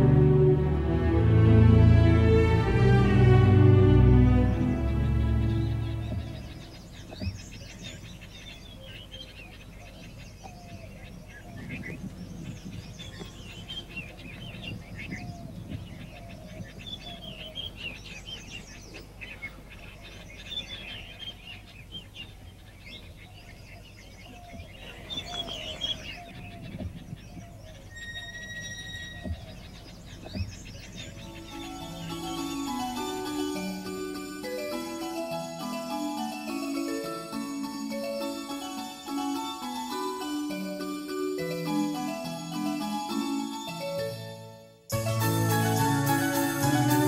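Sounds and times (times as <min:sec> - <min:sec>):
birds chirping and twittering: 0:04.2 - 0:47.0.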